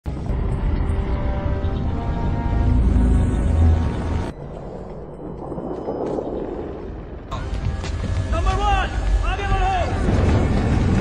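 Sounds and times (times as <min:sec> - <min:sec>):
film soundtrack music: 0:00.1 - 0:11.0
steady rumbling noise: 0:02.0 - 0:11.0.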